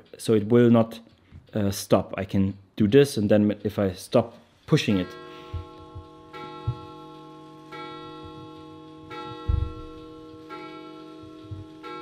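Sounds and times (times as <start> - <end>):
sustained chord struck: 4.8 - 12.0
soft low thumps: 5.4 - 7.1, 9.2 - 10.4, 11.2 - 11.8.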